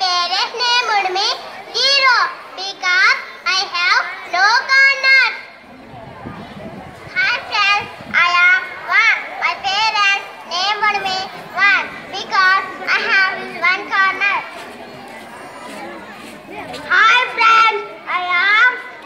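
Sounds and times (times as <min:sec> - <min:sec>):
child speaking into a microphone: 0:00.0 - 0:05.6, 0:07.0 - 0:14.6, 0:16.5 - 0:19.0.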